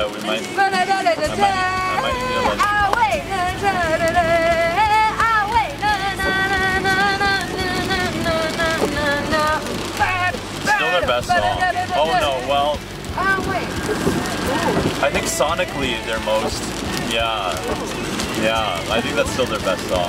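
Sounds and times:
car cabin road noise: 0.0 - 20.0
woman singing: 0.1 - 12.5.

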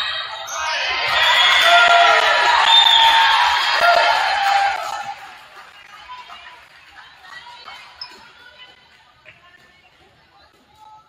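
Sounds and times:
crowd cheering and yelling: 0.0 - 6.3.

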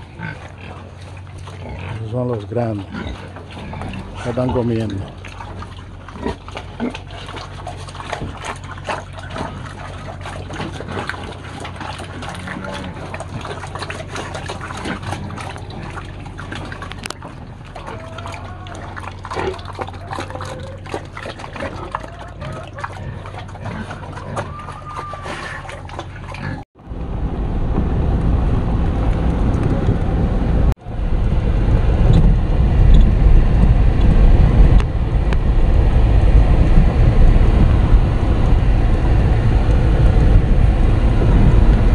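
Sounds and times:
pigs slurping slop: 0.0 - 26.8
car driving on dirt road: 25.6 - 41.9.

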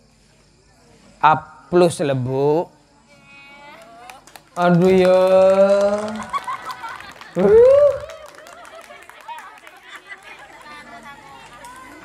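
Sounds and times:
man exclaiming through a microphone: 7.4 - 8.2.

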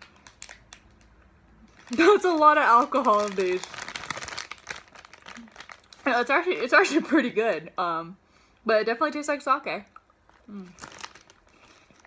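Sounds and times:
plastic wrapper crinkling: 0.0 - 6.6, 10.3 - 12.0.

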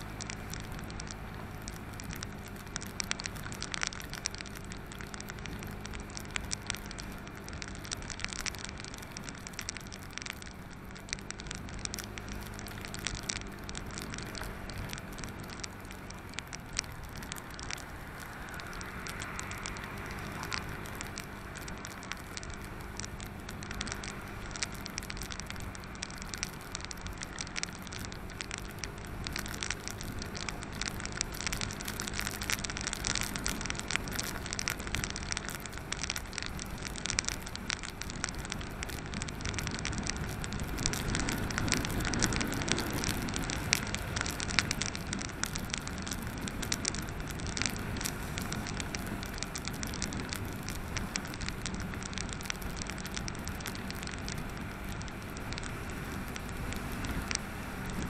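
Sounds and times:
wind and wet road noise: 0.0 - 58.0.

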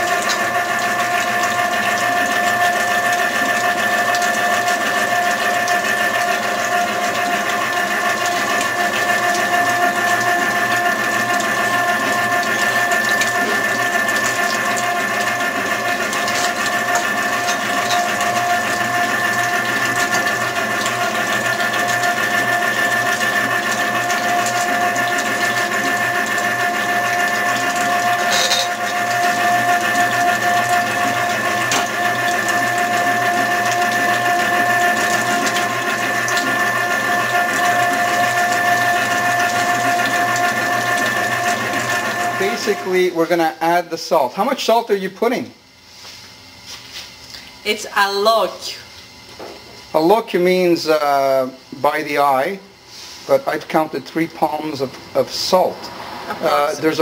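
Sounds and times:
machine motor whining: 0.0 - 43.7.

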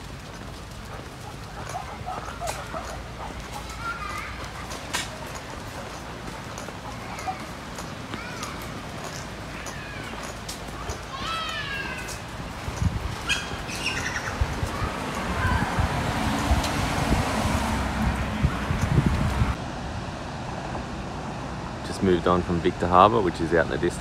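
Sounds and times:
birds chirping and calling: 0.2 - 15.8
rushing noise with low bumps: 12.1 - 22.6.

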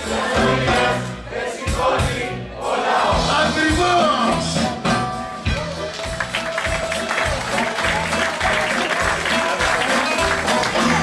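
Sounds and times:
live band playing: 0.0 - 11.0
bass beat: 3.1 - 11.0
audience applause: 5.5 - 11.0.

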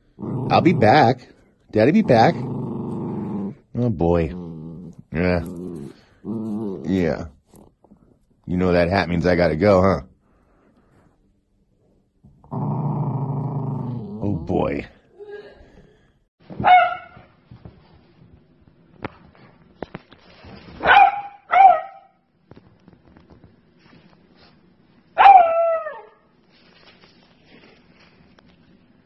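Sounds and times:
puppy growling: 0.0 - 8.1, 12.3 - 15.0
puppy long bark: 16.6 - 17.2, 20.8 - 22.2, 25.2 - 26.2.

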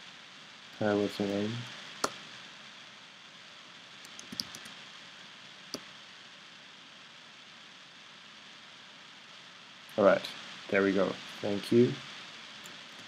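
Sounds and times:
faint hiss: 0.0 - 13.0
keyboard keys clicking: 4.1 - 4.7.

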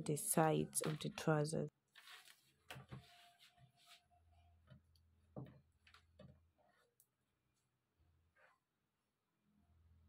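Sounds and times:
soft handling taps and rustles: 2.0 - 4.0.

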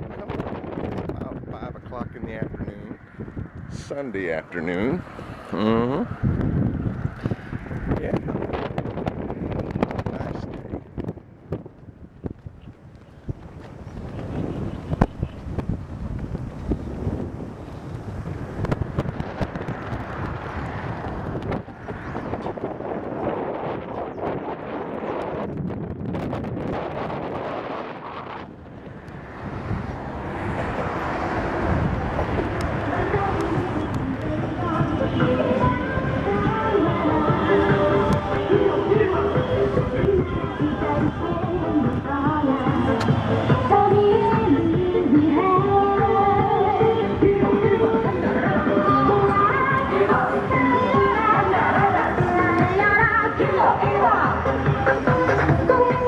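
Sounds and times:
street noise: 0.0 - 56.0
wind buffeting microphone: 0.0 - 56.0
street music with singing: 18.2 - 56.0.

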